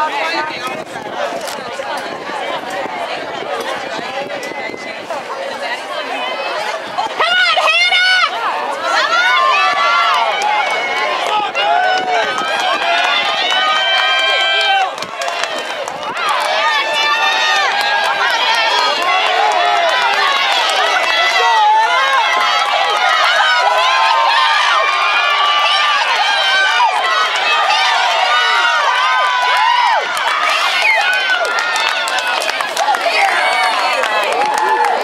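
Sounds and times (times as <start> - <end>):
spectators shouting and cheering: 0.0 - 35.0.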